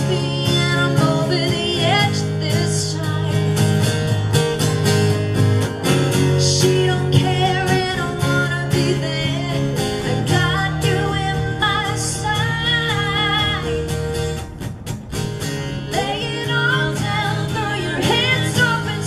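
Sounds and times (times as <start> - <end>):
woman singing: 0.0 - 3.8, 6.2 - 14.0, 15.8 - 19.0
acoustic guitar strumming: 0.0 - 19.0.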